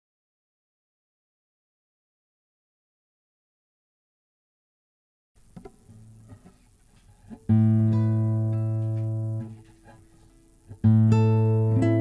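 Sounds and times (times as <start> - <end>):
guitar handling clicks and rustles: 5.5 - 10.4.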